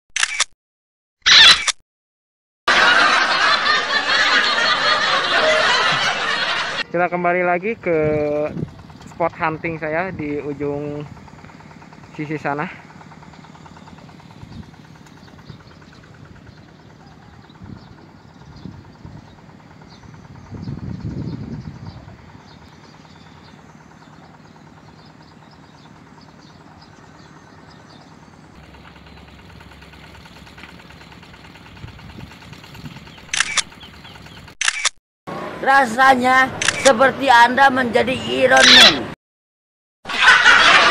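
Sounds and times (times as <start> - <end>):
open-air background noise: 2.7 - 39.2
wind rumble on microphone: 7.8 - 10.4, 17.1 - 22.7, 31.8 - 33.1.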